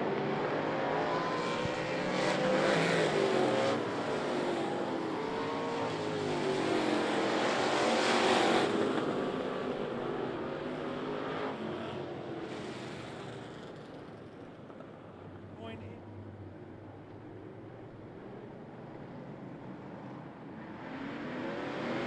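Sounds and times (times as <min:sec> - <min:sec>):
race car engines passing by: 0:00.0 - 0:22.0.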